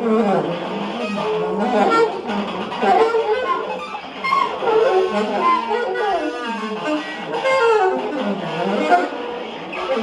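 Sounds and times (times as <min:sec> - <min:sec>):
electric guitar: 0:00.0 - 0:10.0
saxophone: 0:00.0 - 0:10.0.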